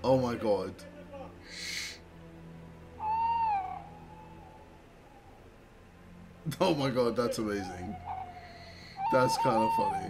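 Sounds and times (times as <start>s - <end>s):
owl-like hoot: 3.0s - 5.4s, 7.6s - 10.0s.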